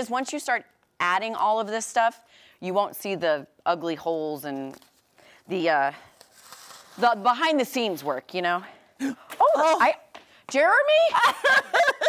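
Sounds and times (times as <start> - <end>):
netting rustling through paper: 6.1 - 7.3.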